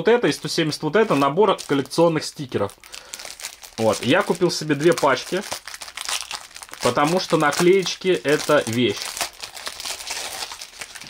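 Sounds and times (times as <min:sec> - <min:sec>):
plastic wrapper crinkling: 0:00.3 - 0:11.0.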